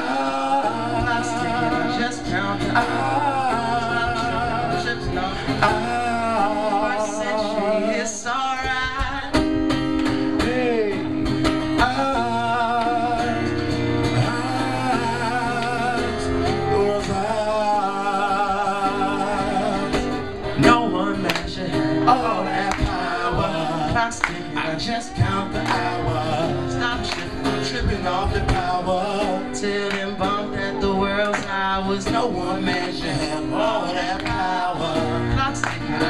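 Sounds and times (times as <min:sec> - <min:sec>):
man singing: 0:00.0 - 0:36.0
strummed acoustic guitar: 0:00.0 - 0:36.0.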